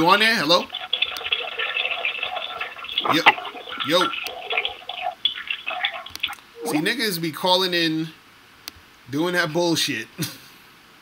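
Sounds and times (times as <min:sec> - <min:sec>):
crackly telephone line noise: 0:00.0 - 0:06.9.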